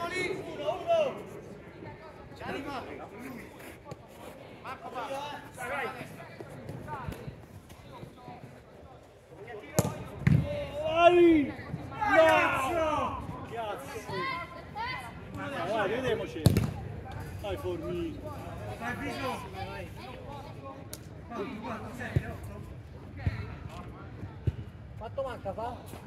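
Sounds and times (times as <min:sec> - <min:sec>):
players shouting: 0:09.8 - 0:16.4
football being kicked: 0:16.4 - 0:16.8.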